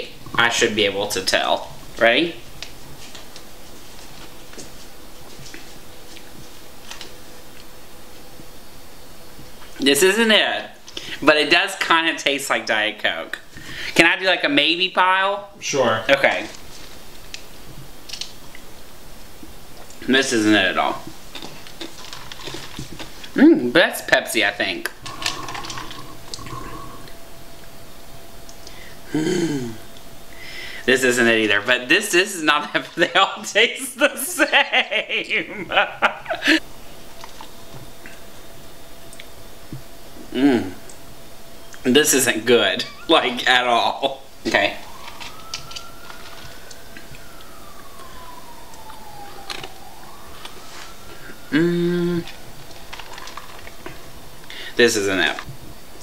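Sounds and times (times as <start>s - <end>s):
faint siren: 0.8s - 10.8s, 20.3s - 56.0s
soda sipped with ice clicks: 25.1s - 27.1s.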